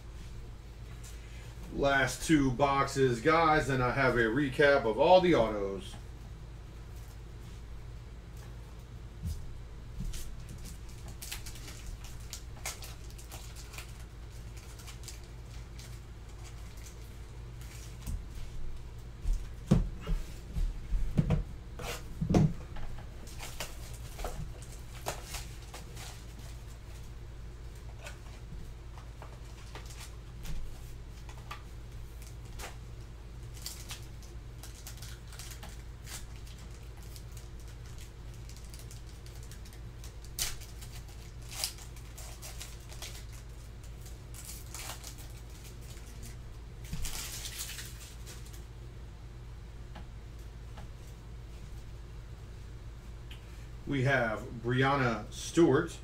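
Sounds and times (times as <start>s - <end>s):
steady low hum: 0.0s - 56.0s
foil card packs crinkling: 10.1s - 18.7s, 23.0s - 48.7s.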